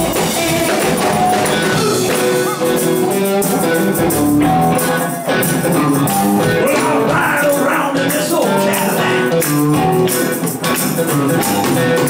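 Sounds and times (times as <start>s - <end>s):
electric guitar: 0.0s - 12.0s
live rock band playing: 0.0s - 12.0s.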